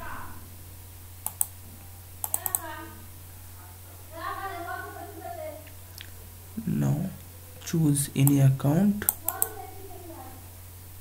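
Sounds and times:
steady low hum: 0:00.0 - 0:11.0
computer mouse clicking: 0:01.2 - 0:01.6, 0:02.2 - 0:02.7, 0:09.0 - 0:09.6.

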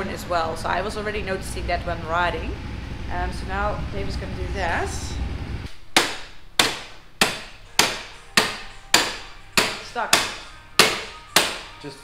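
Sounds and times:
hammer blows on metal: 0:06.0 - 0:11.8.

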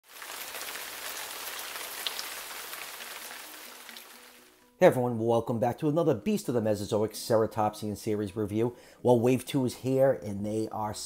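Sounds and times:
rain-like patter and hiss: 0:00.0 - 0:04.7.

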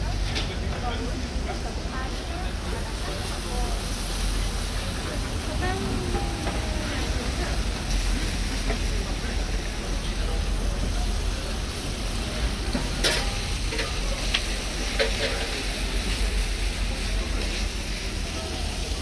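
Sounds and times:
chicken sizzling on griddle: 0:00.0 - 0:19.0.

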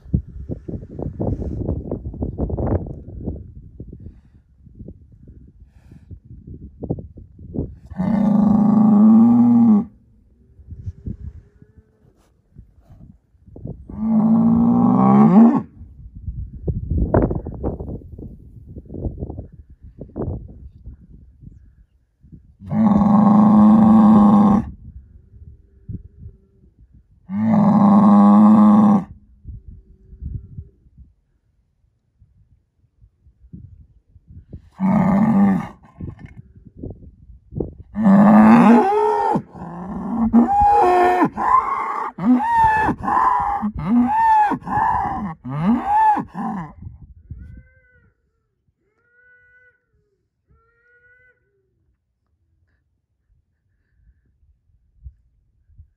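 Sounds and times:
bull bellowing: 0:38.0 - 0:46.8.

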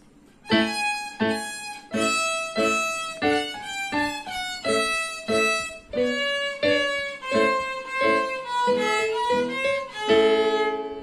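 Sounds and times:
violin playing: 0:00.4 - 0:11.0.

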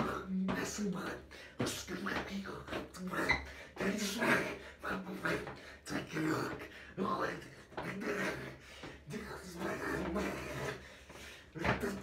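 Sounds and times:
man vocalizing without words: 0:00.0 - 0:12.0.

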